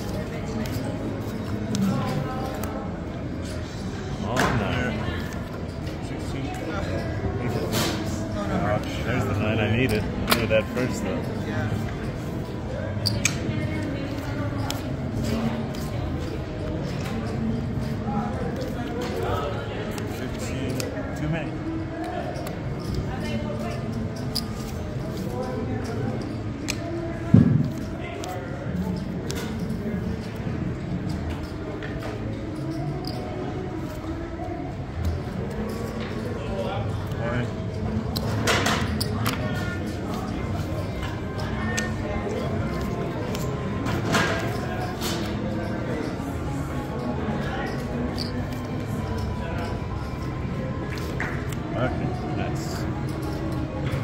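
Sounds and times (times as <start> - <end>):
indistinct voices and hubbub: 0.0 - 54.0
playing cards and chips clicking: 27.7 - 30.4, 37.8 - 46.2, 46.9 - 51.7.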